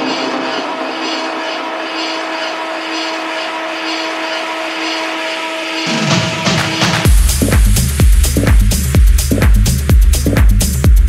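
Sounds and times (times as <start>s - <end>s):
noisy synth wash: 0.0s - 10.3s
synth bass: 0.0s - 11.0s.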